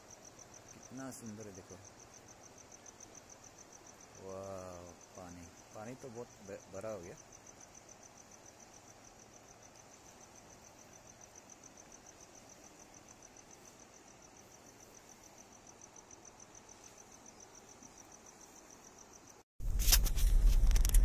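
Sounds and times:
crickets chirping: 0:00.0 - 0:21.0
soft low hiss: 0:00.0 - 0:21.0.

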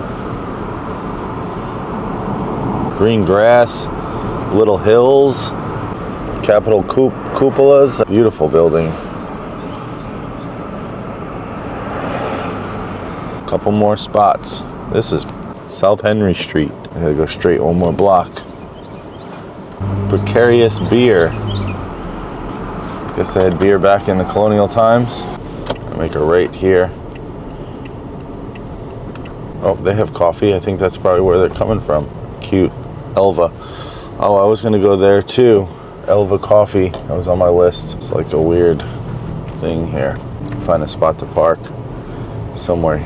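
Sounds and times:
car road and engine noise: 0:00.0 - 0:43.0
turn signal clicking: 0:27.0 - 0:29.5.

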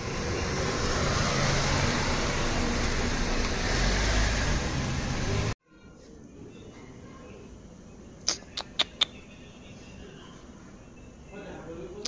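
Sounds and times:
vehicle engine and road noise: 0:00.0 - 0:05.6.

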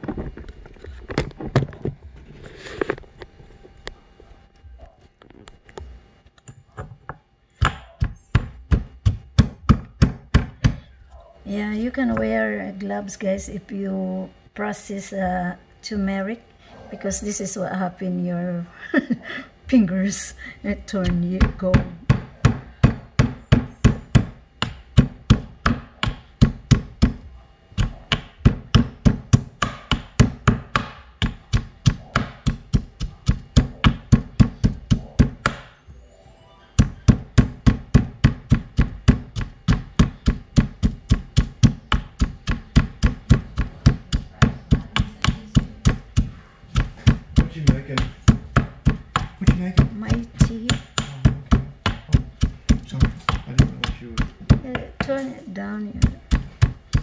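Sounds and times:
pestle pounding in mortar: 0:07.6 - 0:10.9, 0:20.7 - 0:35.8, 0:36.8 - 0:57.0.

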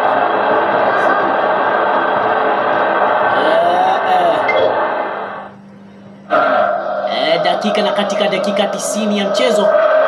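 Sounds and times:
low steady hum: 0:03.4 - 0:09.6.

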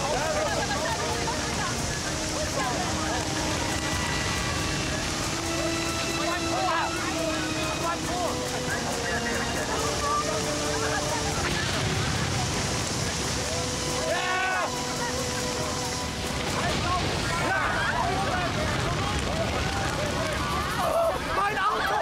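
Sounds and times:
fire hoses spraying water: 0:00.0 - 0:22.0
people shouting: 0:00.0 - 0:22.0.

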